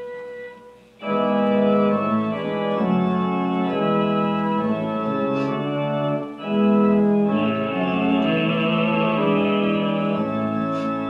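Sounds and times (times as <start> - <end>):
organ playing hymn chords: 0.0 - 11.0.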